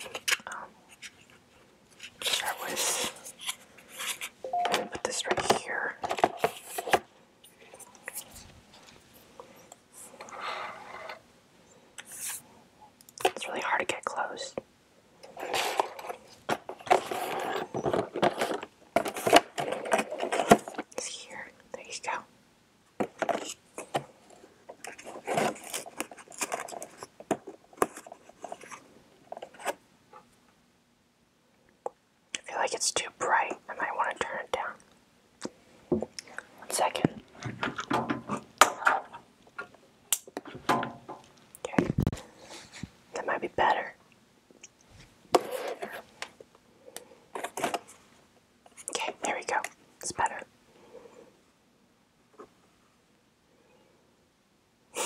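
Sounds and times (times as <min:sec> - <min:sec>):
soft whispering: 0:00.0 - 0:00.9, 0:02.2 - 0:03.5, 0:04.9 - 0:06.2, 0:13.2 - 0:14.6, 0:20.8 - 0:22.3, 0:32.4 - 0:34.9, 0:36.2 - 0:37.3, 0:41.6 - 0:44.0, 0:48.7 - 0:51.3.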